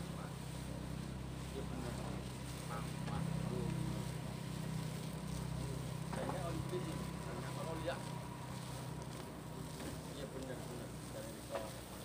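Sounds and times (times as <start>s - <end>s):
faint voices: 0.0s - 12.0s
low engine hum: 0.0s - 12.0s.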